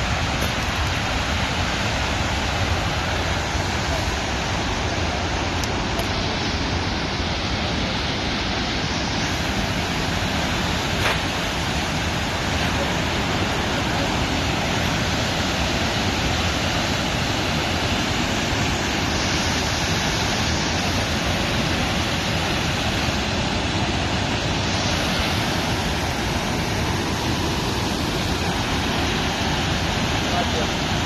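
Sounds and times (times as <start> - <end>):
water rushing over dam: 0.0 - 31.0.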